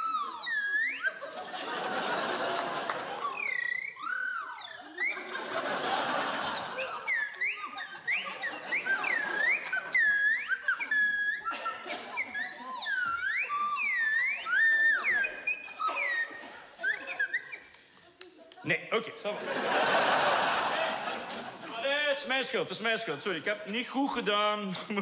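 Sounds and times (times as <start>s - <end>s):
slide whistle swooping glides: 0.0s - 17.8s.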